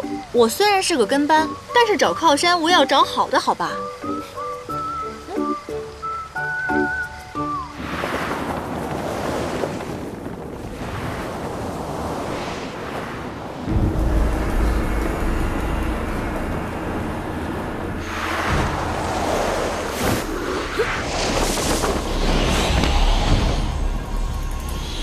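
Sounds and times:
background music: 0.0s - 7.9s
whooshes of rushing air: 7.7s - 25.0s
deep low rumble: 13.7s - 25.0s.

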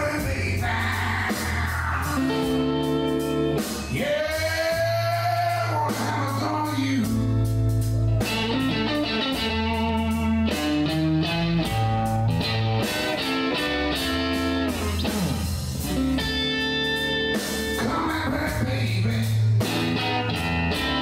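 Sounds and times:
bass line: 0.0s - 21.0s
electric guitar long notes: 0.0s - 21.0s
steady drum beat: 0.0s - 21.0s.

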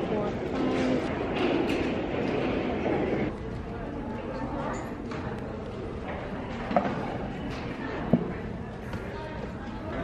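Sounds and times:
faint indistinct voices: 0.0s - 10.0s
rumbling hall background noise: 0.0s - 10.0s.

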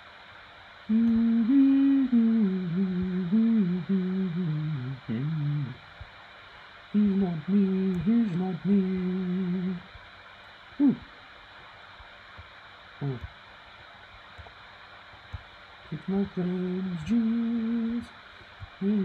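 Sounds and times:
man humming: 0.9s - 5.8s, 7.0s - 9.9s, 10.8s - 11.2s, 13.0s - 13.3s, 15.9s - 19.0s.

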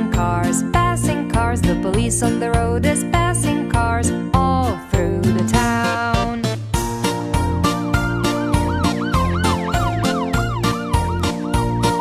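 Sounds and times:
upbeat children's song with drums: 0.0s - 12.0s
cartoon police siren effect: 7.9s - 12.0s.

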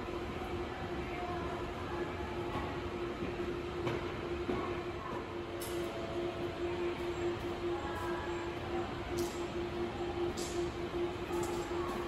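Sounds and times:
mid-pitched hum: 0.0s - 12.0s.

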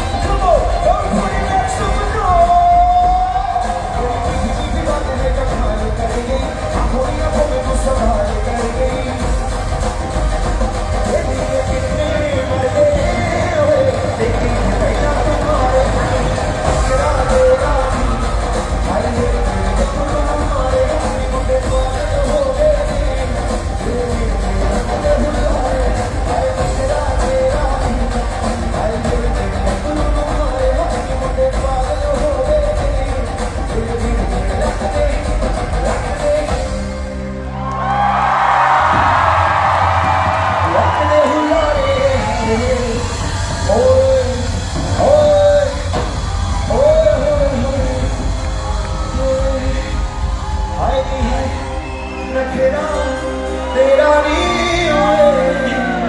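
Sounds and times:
man singing: 0.0s - 37.2s, 39.9s - 56.0s
amplified pop music with bass: 0.0s - 56.0s
audience cheering: 0.0s - 56.0s.

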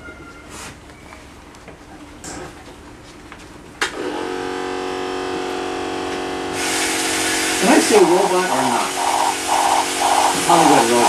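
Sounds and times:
hissy mechanical noise: 4.0s - 11.0s
toy motors and gears whirring: 6.7s - 11.0s.

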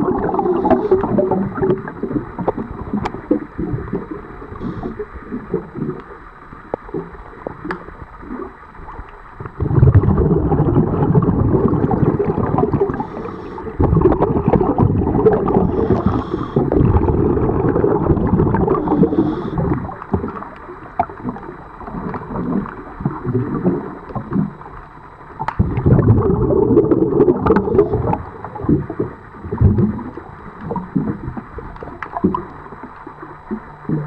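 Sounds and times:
underwater air bubbling: 0.0s - 34.0s.

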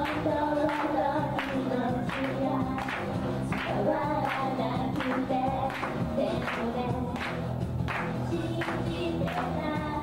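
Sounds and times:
pop band track with steady beat: 0.0s - 10.0s
women singing: 0.0s - 10.0s.

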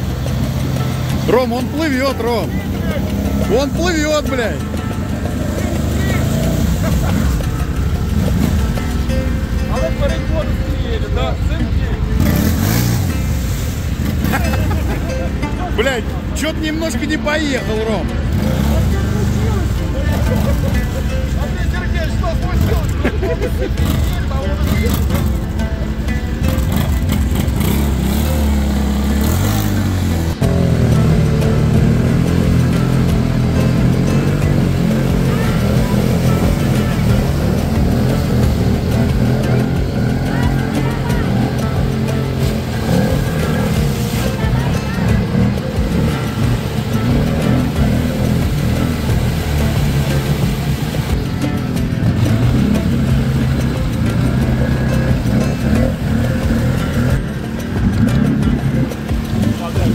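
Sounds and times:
atv engines revving: 0.0s - 59.9s
background music: 0.0s - 59.9s
vehicles churning through mud: 0.0s - 59.9s.

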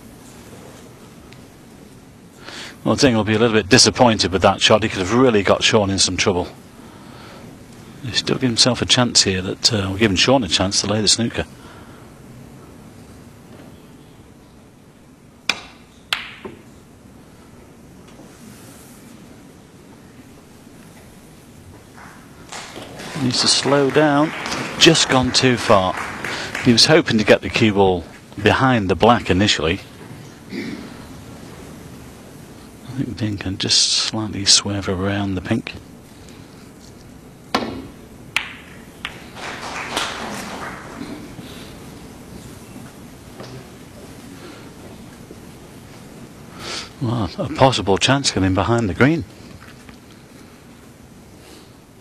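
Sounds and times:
cue tip striking ball: 15.5s - 16.7s, 37.5s - 41.2s
snooker balls clacking: 15.5s - 16.7s, 37.5s - 41.4s
light ball knock: 37.5s - 39.2s.

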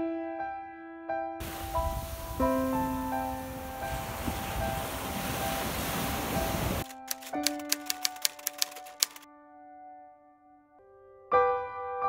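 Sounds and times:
soft piano music: 0.0s - 12.0s
surf washing onto beach: 1.4s - 6.8s
typewriter key clicks: 6.8s - 9.2s.

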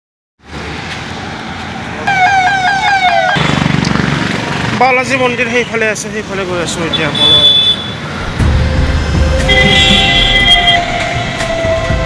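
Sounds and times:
street traffic noise: 0.4s - 12.0s
vehicle electronic siren: 2.1s - 3.4s, 8.6s - 12.0s.

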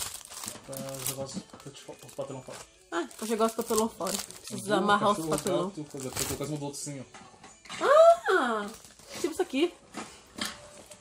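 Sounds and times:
packaging crinkling: 0.0s - 6.8s, 8.6s - 9.3s.

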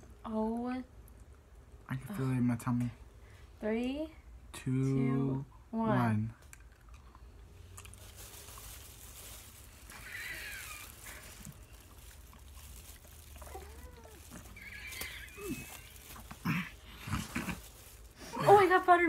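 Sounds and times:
high wavering vocal squeaks: 9.9s - 11.2s, 13.5s - 16.3s.

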